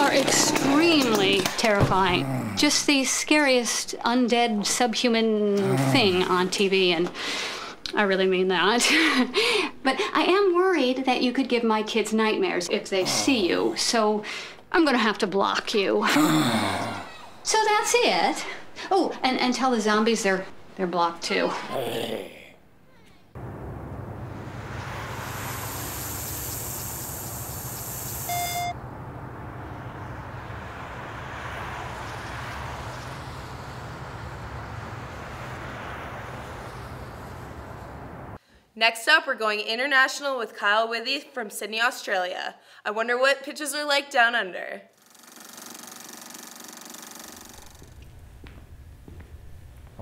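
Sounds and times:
low hum: 23.4 - 38.4
high hiss: 24.3 - 28.6
breathalyzer beep: 28.2 - 28.8
film projector rattling: 45.0 - 47.8.

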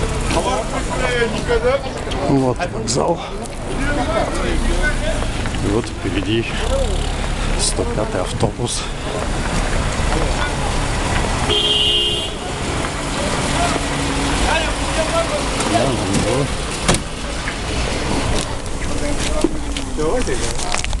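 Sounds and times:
engine and traffic noise: 0.0 - 21.0
people's voices: 0.0 - 21.0
vehicle horn: 11.4 - 12.6.

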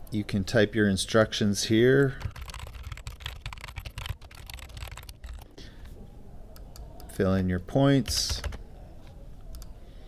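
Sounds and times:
computer keyboard typing: 2.2 - 5.5, 8.0 - 8.6.

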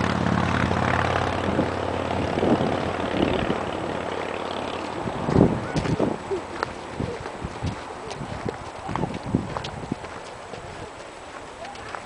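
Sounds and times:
footsteps on dirt trail: 2.4 - 12.0.

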